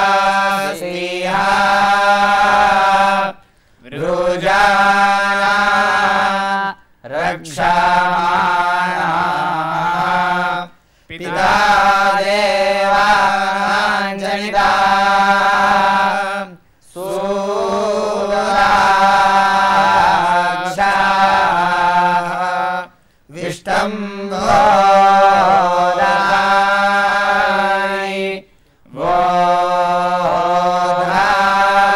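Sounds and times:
young men chanting a hymn: 0.0 - 31.9.

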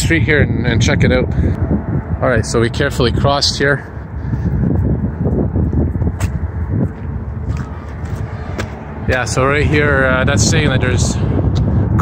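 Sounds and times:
wind buffeting microphone: 0.0 - 12.0
footsteps on wooden steps: 6.0 - 9.3.

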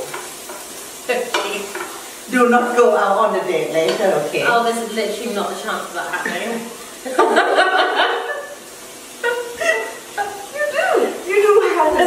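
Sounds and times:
women laughing and exclaiming: 6.2 - 8.6, 9.2 - 12.0.

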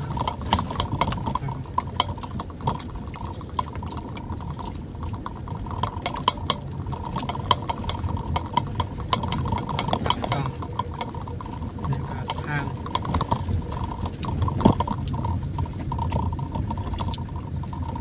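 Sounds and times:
rain pattering on windshield: 0.0 - 18.0
vehicle rumbling on road: 0.0 - 18.0.

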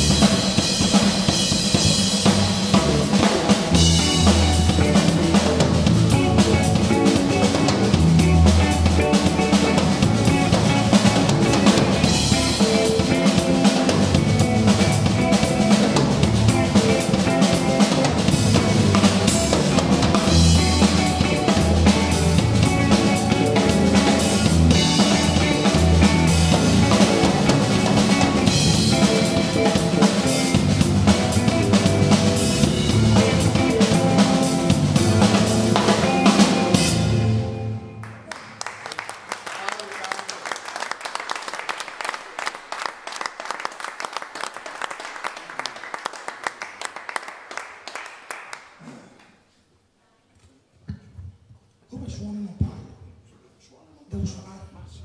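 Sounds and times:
drum kit groove: 0.0 - 37.8
electric bass: 0.0 - 38.1
electric guitar: 0.0 - 38.3.

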